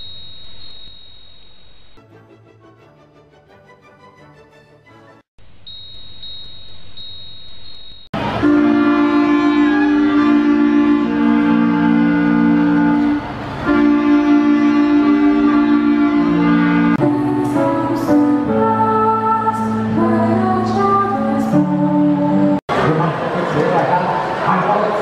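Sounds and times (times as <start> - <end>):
clarinets and saxophone playing: 8.2 - 17.4.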